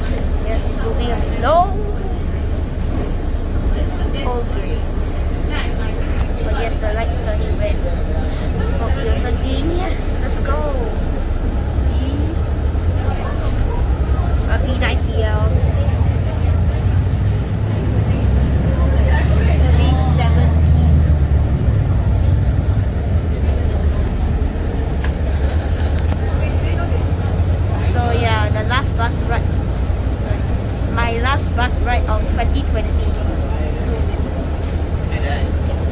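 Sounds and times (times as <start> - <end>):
bus engine and road rumble: 0.0 - 35.9.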